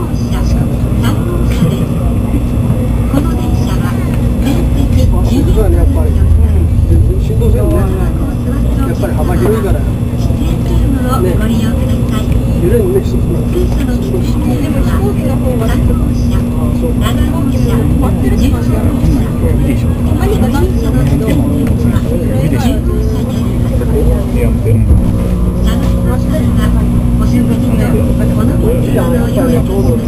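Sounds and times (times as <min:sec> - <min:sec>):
low hum: 0:00.0 - 0:30.0
train cabin rumble: 0:00.0 - 0:30.0.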